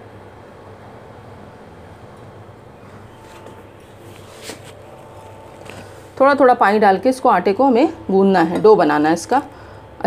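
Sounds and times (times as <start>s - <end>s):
steady low hum: 0.0s - 10.0s
hand rubbing flour in bowl: 3.0s - 6.4s.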